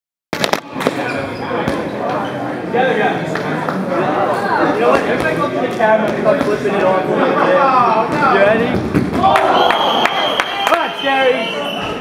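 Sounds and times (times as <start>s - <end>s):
players chattering: 0.4s - 12.0s.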